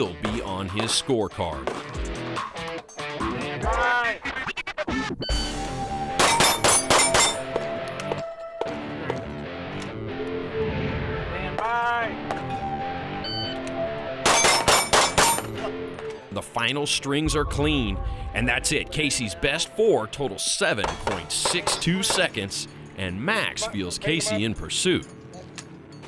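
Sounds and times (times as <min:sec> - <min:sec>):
background music: 0:00.0 - 0:26.0
high electronic timer beep: 0:05.2 - 0:05.6, 0:13.2 - 0:13.6
pistol shots hitting steel plates: 0:06.2 - 0:07.6, 0:14.2 - 0:15.6, 0:20.9 - 0:22.7.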